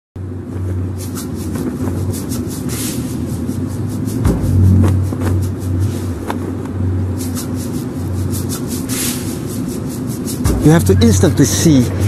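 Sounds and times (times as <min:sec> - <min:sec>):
low rumbling hum: 0:00.2 - 0:12.0.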